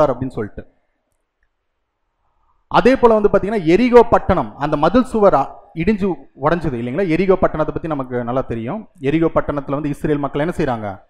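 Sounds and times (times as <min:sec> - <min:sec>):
man speaking: 0:00.0 - 0:00.7, 0:02.7 - 0:11.0.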